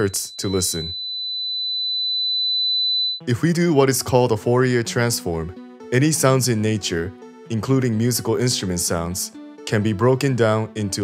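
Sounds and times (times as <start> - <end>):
high sine tone: 0.0 - 3.2.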